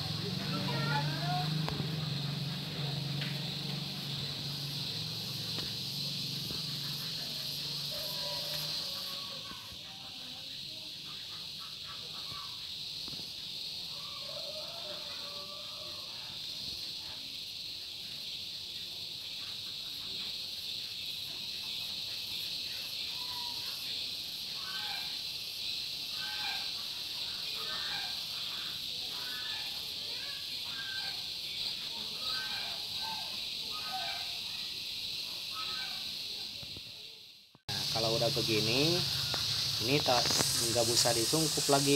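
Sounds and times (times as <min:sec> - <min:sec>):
high-pitched insect chorus: 0:00.0 - 0:41.9.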